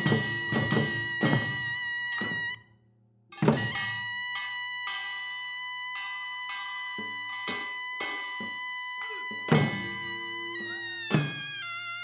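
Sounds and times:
drum strokes: 0.0s - 2.6s, 3.4s - 5.2s, 5.9s - 11.7s.

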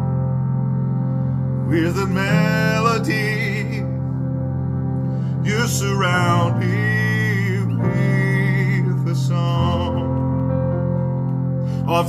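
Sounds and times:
held instrumental chord: 0.0s - 12.0s.

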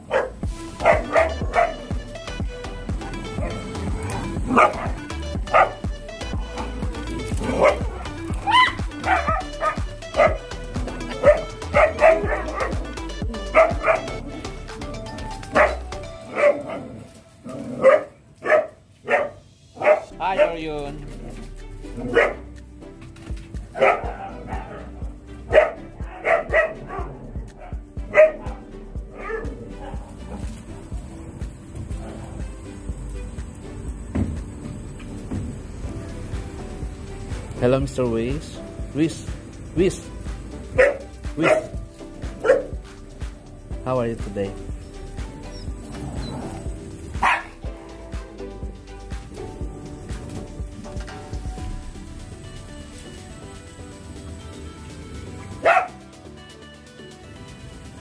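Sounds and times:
dogs barking and yipping: 0.0s - 22.5s, 23.3s - 33.1s, 40.1s - 43.6s, 44.6s - 53.1s, 54.0s - 56.3s.

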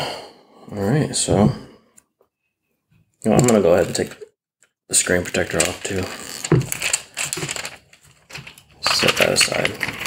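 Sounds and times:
plastic film peeling off: 5.1s - 10.0s.

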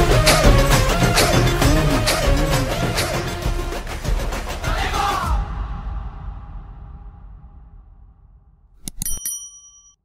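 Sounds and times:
bright bell ding: 8.8s - 10.0s.

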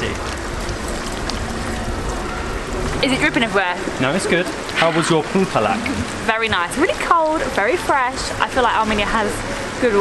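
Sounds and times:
low steady rumble: 0.0s - 10.0s
water jets splashing into basins: 0.0s - 10.0s.

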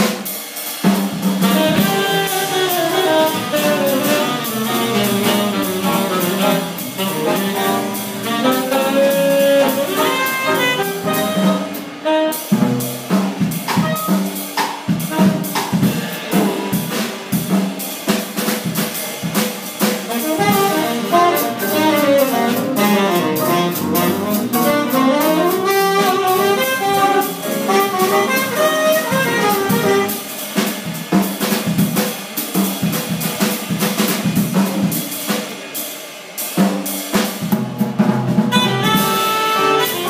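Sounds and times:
jazz drum kit solo: 0.0s - 40.0s.

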